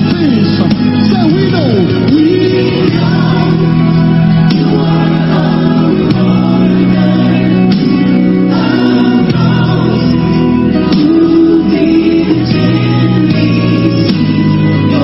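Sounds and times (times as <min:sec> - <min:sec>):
choir singing gospel music: 0:00.0 - 0:15.0.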